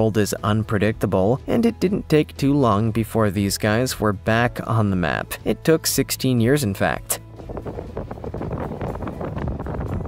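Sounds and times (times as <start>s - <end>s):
wind buffeting microphone: 7.3s - 10.0s.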